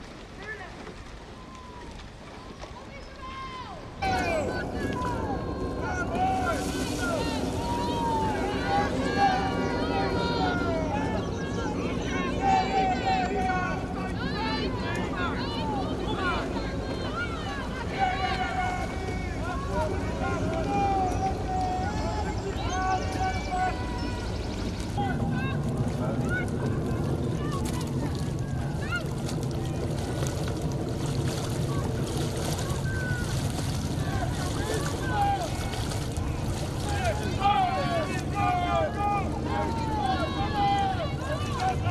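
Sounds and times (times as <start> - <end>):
rippling water: 0.0 - 41.9
people shouting and calling out: 2.8 - 29.2, 31.7 - 41.9
wind on microphone: 14.6 - 38.0.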